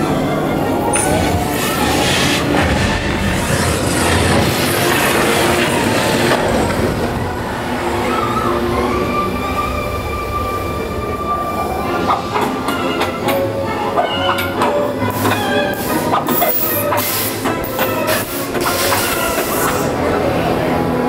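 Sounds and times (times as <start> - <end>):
ride vehicle rumbling and rattling: 0.0 - 21.0.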